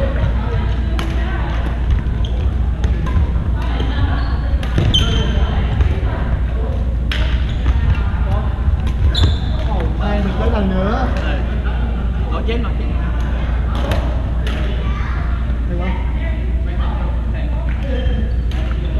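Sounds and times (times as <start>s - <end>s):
steady hum: 0.0s - 18.9s
rackets striking shuttlecock: 2.8s - 6.0s, 7.1s - 8.1s
shoes squeaking on wooden floor: 9.1s - 9.8s.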